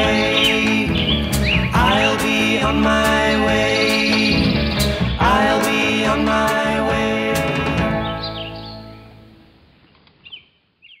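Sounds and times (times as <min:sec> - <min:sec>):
bird chirping: 0:00.0 - 0:06.3, 0:07.8 - 0:09.2, 0:09.8 - 0:11.0
music: 0:00.0 - 0:09.7.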